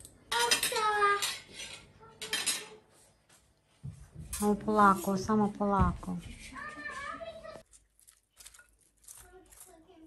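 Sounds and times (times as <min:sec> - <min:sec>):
metal cutlery clinking: 0:00.0 - 0:02.8.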